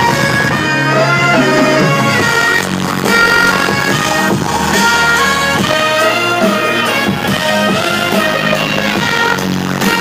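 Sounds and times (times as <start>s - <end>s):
live music over sound system: 0.0s - 10.0s.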